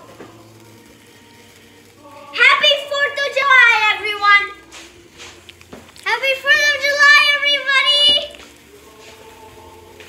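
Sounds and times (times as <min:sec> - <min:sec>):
sparklers fizzing: 0:00.0 - 0:10.0.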